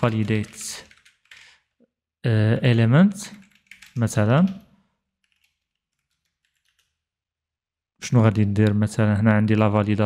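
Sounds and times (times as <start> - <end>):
keyboard typing: 0.0 - 1.6, 3.3 - 7.0.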